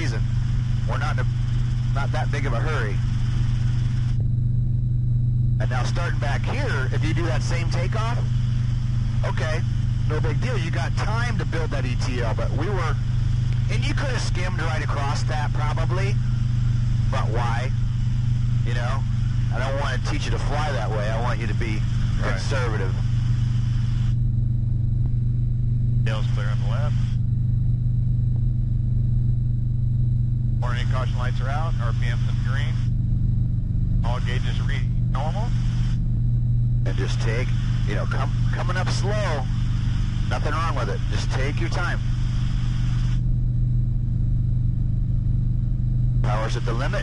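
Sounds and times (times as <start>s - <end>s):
helicopter engine and rotor drone: 0.0s - 47.0s.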